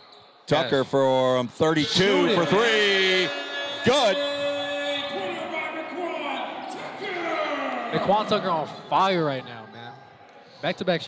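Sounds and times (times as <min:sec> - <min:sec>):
voices in hall: 0:00.0 - 0:11.0.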